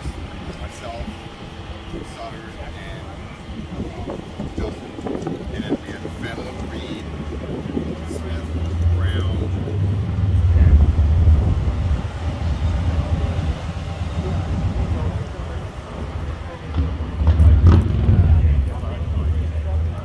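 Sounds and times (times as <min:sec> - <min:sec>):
motorcycle engine running: 0:00.0 - 0:20.0
people talking: 0:00.0 - 0:20.0.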